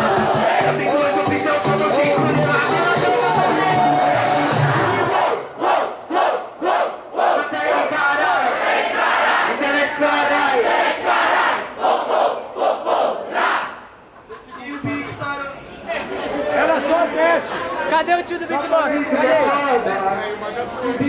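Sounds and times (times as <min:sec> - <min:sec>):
crowd shouting: 0:02.2 - 0:13.8.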